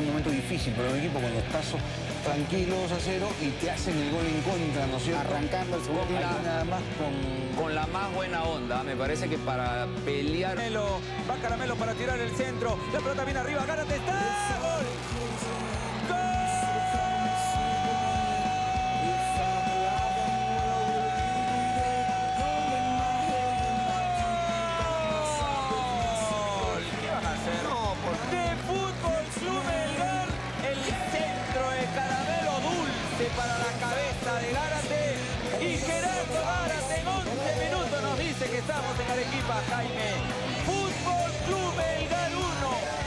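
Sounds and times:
music with singing voices: 0.0s - 43.0s.

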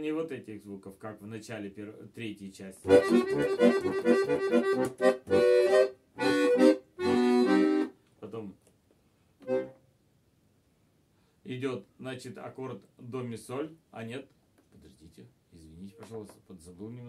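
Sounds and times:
button accordion playing: 2.9s - 8.0s, 9.4s - 9.8s.

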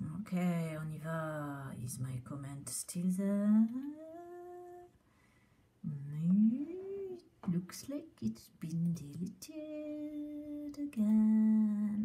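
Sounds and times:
woman humming: 3.6s - 4.9s, 5.9s - 7.3s.

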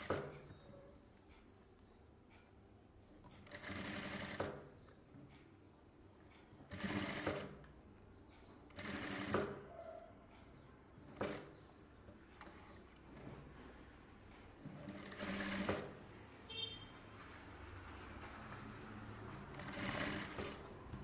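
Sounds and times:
industrial sewing machine stitching: 3.4s - 4.7s, 6.7s - 7.6s, 8.7s - 9.8s, 14.8s - 16.0s, 18.2s - 21.0s.

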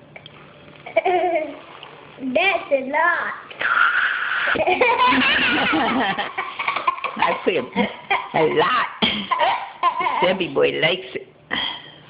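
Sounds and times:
small child giggling: 0.9s - 1.6s, 4.5s - 10.3s.

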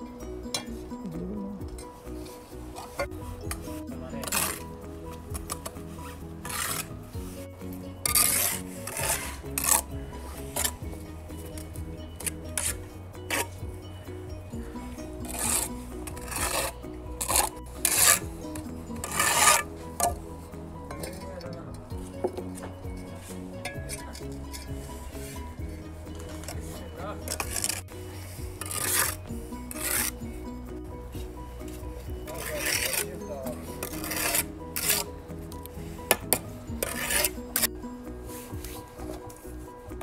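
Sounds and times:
background music: 0.0s - 40.0s
trowel scraping mortar: 1.6s - 40.0s.

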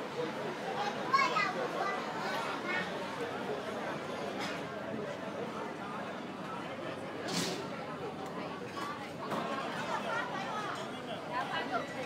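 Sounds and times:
child's high-pitched voice: 0.8s - 2.9s.

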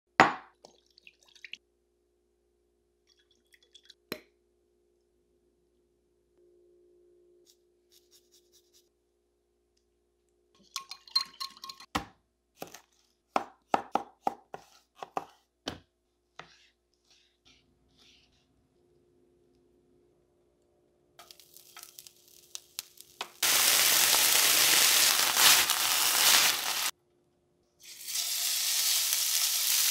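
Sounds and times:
knife chopping on cutting board: 12.0s - 15.8s.

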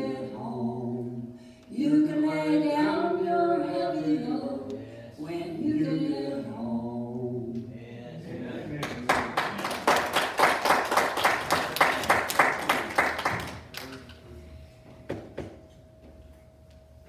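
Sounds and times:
congregation applauding: 8.8s - 14.0s.

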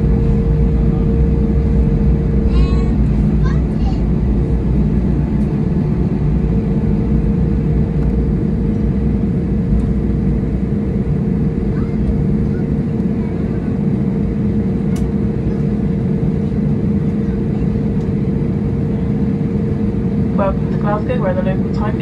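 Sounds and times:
steady hum: 0.0s - 17.4s, 18.0s - 22.0s
aircraft engine idling rumble: 0.0s - 22.0s.

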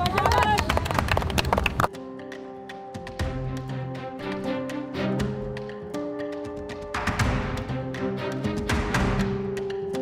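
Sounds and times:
group clapping hands: 0.0s - 2.0s
soft background music: 1.9s - 10.0s.

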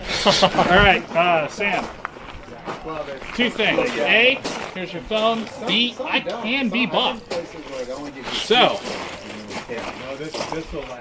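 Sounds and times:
men talking quietly: 0.0s - 11.0s.

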